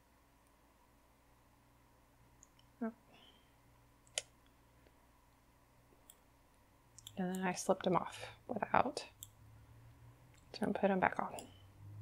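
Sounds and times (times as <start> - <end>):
knitting needles clicking: 2.4 - 2.7, 4.0 - 4.6, 6.9 - 8.1, 10.3 - 11.6.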